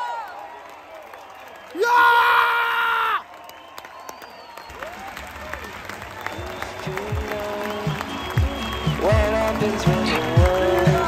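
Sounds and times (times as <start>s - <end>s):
crowd cheering and shouting: 0.0s - 11.0s
man screaming: 1.8s - 3.2s.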